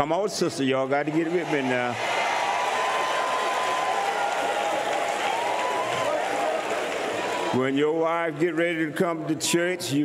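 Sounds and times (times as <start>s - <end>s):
congregation applauding: 1.0s - 8.2s.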